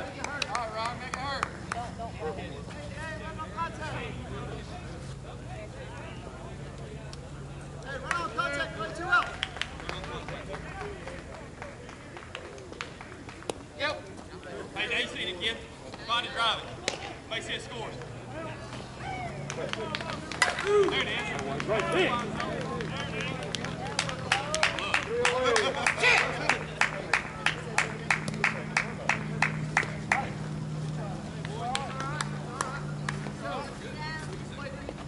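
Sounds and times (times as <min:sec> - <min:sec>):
rhythmic clapping: 0:00.0 - 0:02.0, 0:07.8 - 0:13.8, 0:19.4 - 0:33.7
players shouting: 0:07.8 - 0:11.6, 0:16.0 - 0:34.7.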